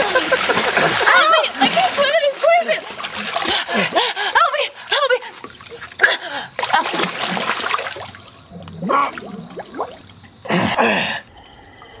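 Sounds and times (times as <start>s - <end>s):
water splashing and sloshing: 0.0s - 11.8s.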